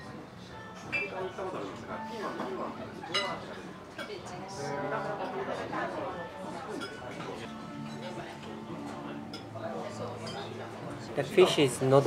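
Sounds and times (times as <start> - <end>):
tableware clinking: 0.8 - 1.3, 2.4 - 4.2, 6.6 - 10.6.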